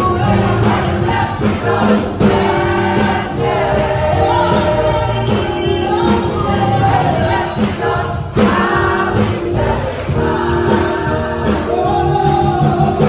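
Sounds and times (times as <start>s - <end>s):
gospel choir singing: 0.0s - 13.0s.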